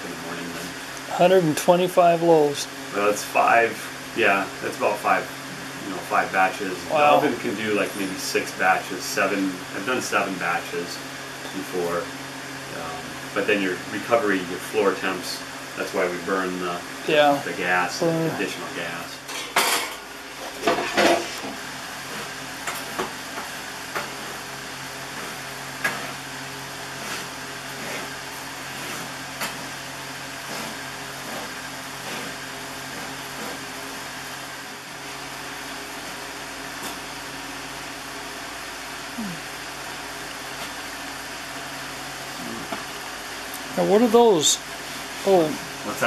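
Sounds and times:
steady machine hum: 0.0s - 46.0s
peel knocking and scraping in oven: 20.5s - 34.1s.

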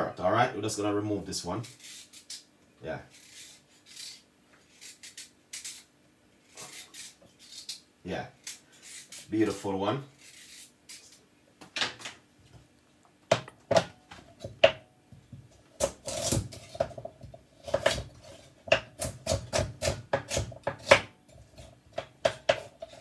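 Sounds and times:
knife chopping on cutting board: 13.3s - 14.8s, 15.8s - 23.0s.

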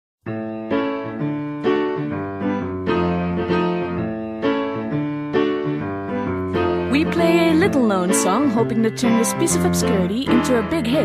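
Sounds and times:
piano chords: 0.2s - 11.0s.

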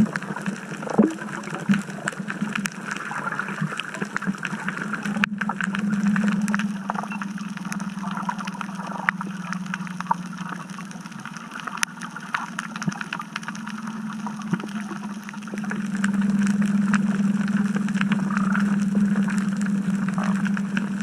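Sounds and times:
sharp clicks and crackle: 0.0s - 21.0s
underwater low hum: 0.0s - 21.0s.

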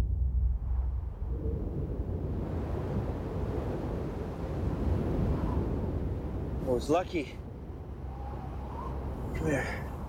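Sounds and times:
low rumble: 0.0s - 3.4s
rushing wind: 0.0s - 10.0s.

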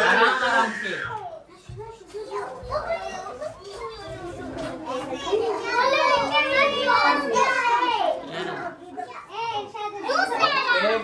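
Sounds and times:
children talking and calling out: 0.0s - 11.0s.

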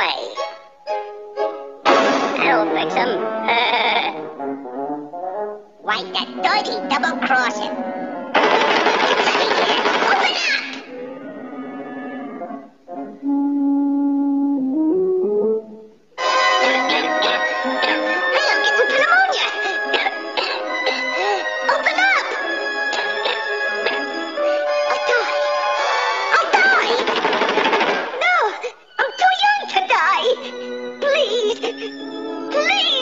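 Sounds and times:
orchestral cartoon music with brass: 0.0s - 10.0s, 12.4s - 27.9s, 28.9s - 33.0s
fast dense rattle: 8.4s - 10.5s, 26.8s - 28.2s.

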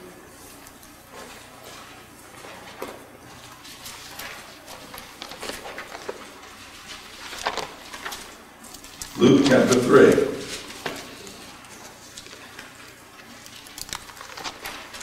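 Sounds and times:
paper pages rustling: 0.5s - 15.0s.

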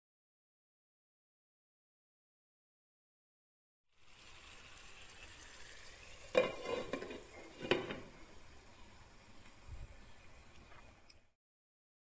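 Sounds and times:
faint sizzle in a pan: 3.9s - 11.4s
spoon scraping a pan: 6.3s - 8.2s.

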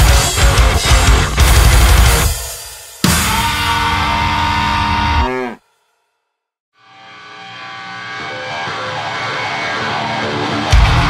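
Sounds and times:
heavy rock band sustained chord: 0.0s - 5.2s, 7.1s - 11.0s.

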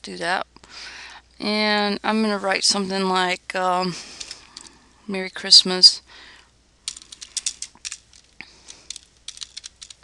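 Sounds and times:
typing on computer keyboard: 8.6s - 10.0s.

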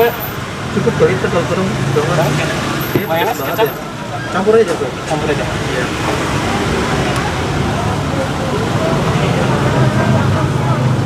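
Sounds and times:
indistinct voices talking: 0.0s - 11.0s
roadside traffic: 0.0s - 11.0s.

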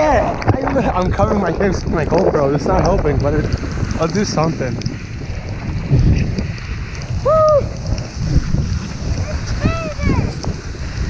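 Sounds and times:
wind buffeting microphone: 0.0s - 11.0s
person crying out: 7.2s - 7.7s.

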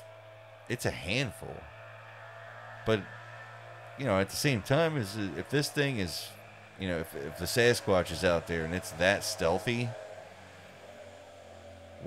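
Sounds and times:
steady low hum: 0.0s - 12.0s
man speaking: 0.7s - 1.7s, 4.0s - 10.0s.

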